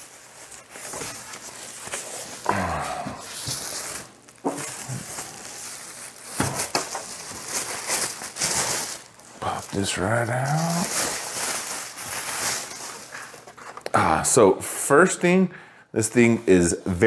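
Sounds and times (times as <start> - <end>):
styrofoam creaking: 0.0 - 13.9
plastic wrap rustling: 0.0 - 14.0.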